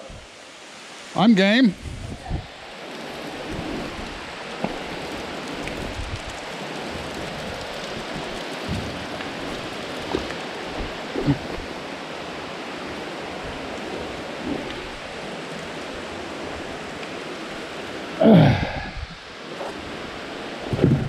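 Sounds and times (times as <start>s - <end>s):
water falling onto wet rocks: 2.8s - 11.9s.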